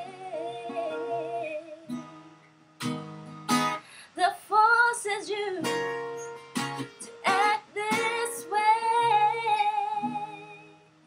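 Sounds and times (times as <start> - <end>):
acoustic guitar chords strummed: 0.0 - 4.0, 5.5 - 11.0.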